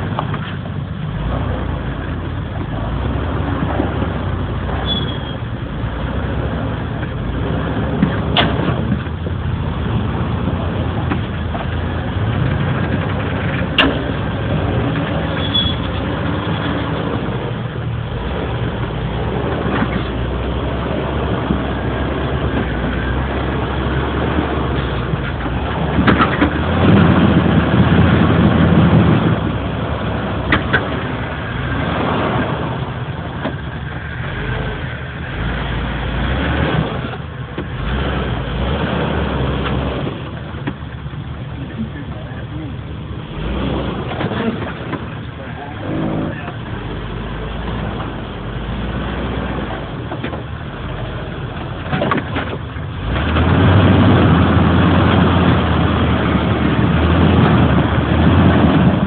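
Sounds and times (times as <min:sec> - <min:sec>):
off-road vehicle engine under load: 0:00.0 - 0:59.0.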